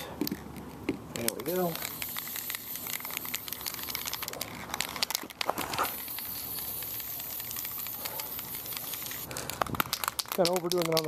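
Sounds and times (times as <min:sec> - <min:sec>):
crackling and rustling: 0:00.2 - 0:11.0
aerosol spray can hissing: 0:01.5 - 0:05.1, 0:05.7 - 0:11.0.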